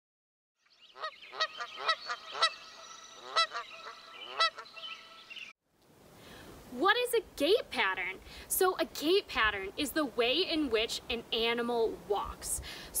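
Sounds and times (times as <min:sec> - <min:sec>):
short repeated bird calls: 0:00.6 - 0:05.5.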